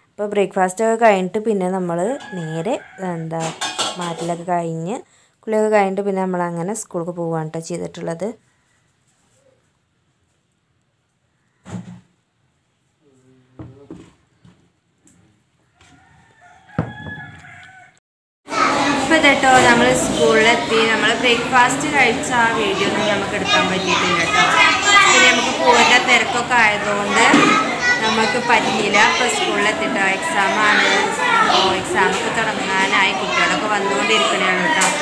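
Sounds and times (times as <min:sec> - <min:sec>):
woman talking: 0:00.2 - 0:08.4, 0:19.1 - 0:35.0
rooster crowing: 0:02.1 - 0:03.4, 0:15.7 - 0:18.0
thump: 0:11.6 - 0:12.1, 0:16.7 - 0:17.2.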